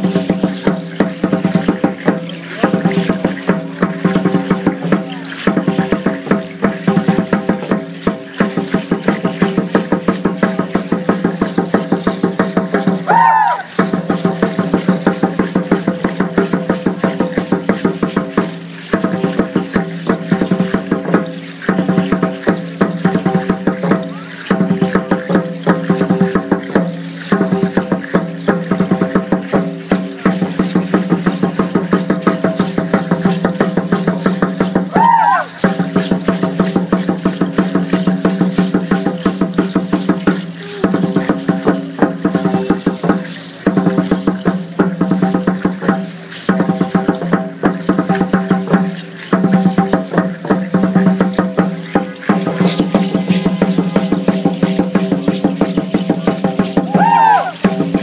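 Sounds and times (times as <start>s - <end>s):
fast drum beat: 0.0s - 58.0s
gliding whistle-like call: 13.1s - 13.7s, 34.9s - 35.5s, 56.9s - 57.6s.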